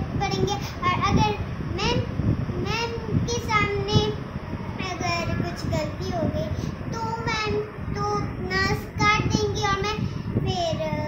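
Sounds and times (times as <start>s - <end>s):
young girl singing: 0.0s - 11.0s.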